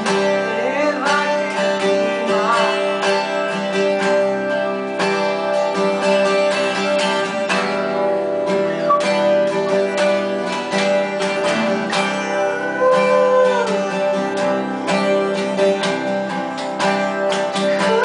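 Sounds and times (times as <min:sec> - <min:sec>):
acoustic guitars strumming chords: 0:00.0 - 0:18.0.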